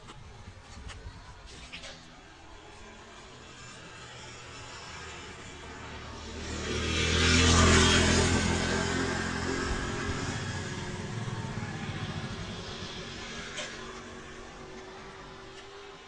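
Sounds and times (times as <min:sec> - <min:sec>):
vehicle passing by: 0:01.5 - 0:16.0.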